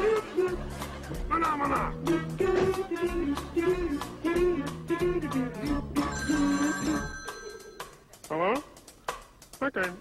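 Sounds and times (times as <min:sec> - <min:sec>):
telephone bell ringing: 0:06.1 - 0:08.0.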